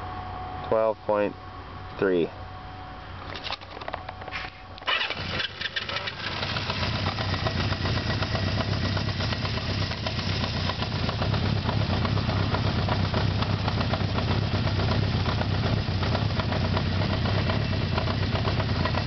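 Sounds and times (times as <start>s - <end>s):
motorcycle engine idling: 4.8s - 19.0s.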